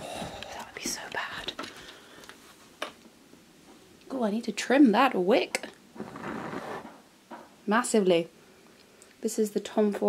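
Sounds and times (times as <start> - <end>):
person whispering: 0.0 - 1.7.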